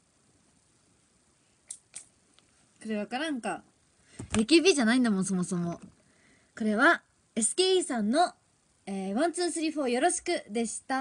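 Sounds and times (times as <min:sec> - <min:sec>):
woman speaking: 0:02.8 - 0:05.9, 0:06.6 - 0:11.0.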